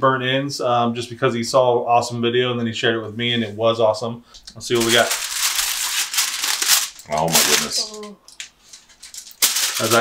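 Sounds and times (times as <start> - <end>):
aluminium foil crinkling: 4.7 - 10.0.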